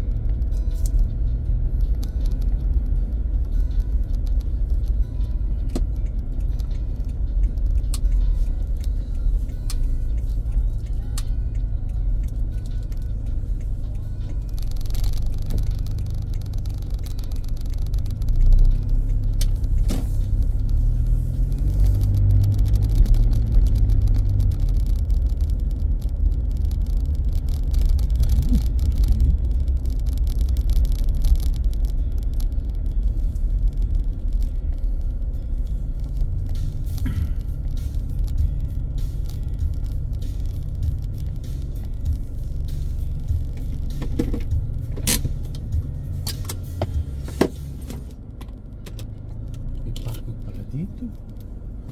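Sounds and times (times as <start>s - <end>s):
car engine and road rumble: 0.0s - 51.9s.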